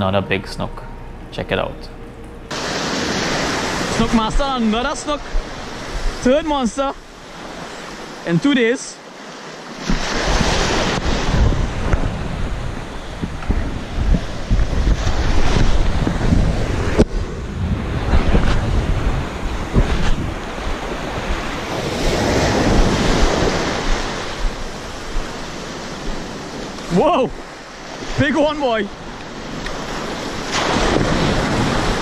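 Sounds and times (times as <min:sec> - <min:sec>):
wind buffeting microphone: 0:02.5 - 0:08.2, 0:09.7 - 0:32.0
surf washing over beach: 0:02.5 - 0:32.0.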